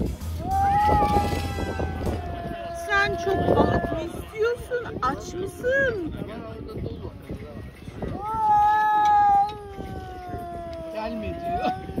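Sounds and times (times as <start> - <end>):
cat yowling: 0.5 - 4.3.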